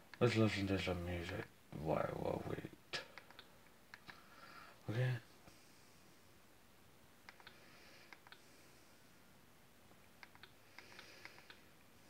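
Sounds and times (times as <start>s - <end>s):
faint small clicks: 3.1s - 4.2s, 7.2s - 8.4s, 10.0s - 11.6s.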